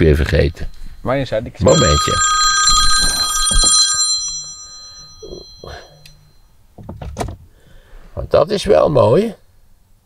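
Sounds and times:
bell-like phone ringtone: 0:01.6 - 0:06.4.

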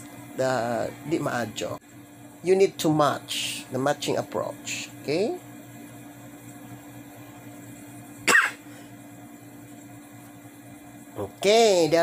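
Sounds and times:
low background hum: 0:00.0 - 0:12.0
person coughing: 0:08.2 - 0:08.7.

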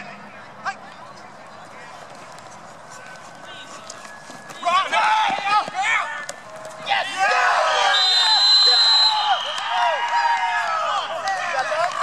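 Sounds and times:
people shouting and yelling: 0:02.9 - 0:12.0.

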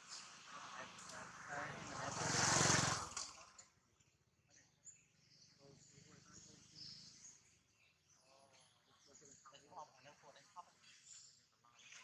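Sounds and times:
motor vehicle passing: 0:00.1 - 0:03.6.

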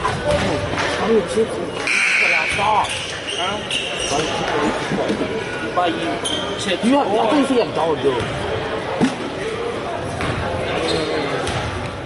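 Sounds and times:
voices echoing in gym: 0:00.0 - 0:12.0
short high squeaks: 0:01.8 - 0:04.4.

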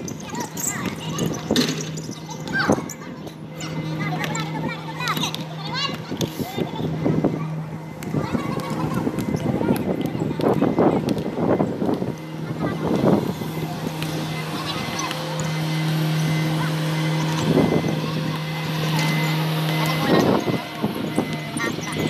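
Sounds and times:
people's voices: 0:00.0 - 0:22.0
steady low hum: 0:00.0 - 0:22.0.

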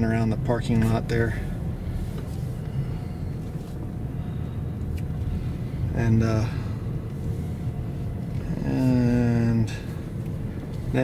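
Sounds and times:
car engine and road noise: 0:00.0 - 0:11.0.

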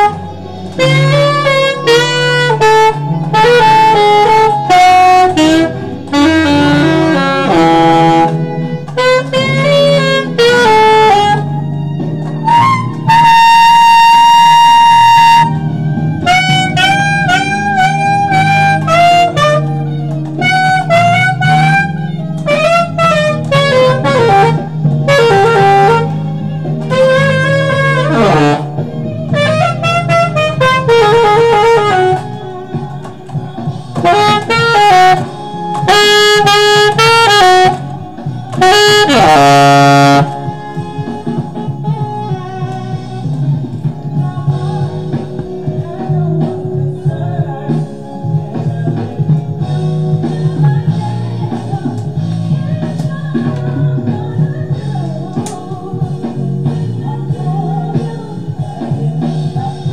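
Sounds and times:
saxophone high note: 0:00.0 - 0:46.8
backing track: 0:00.0 - 0:59.9.

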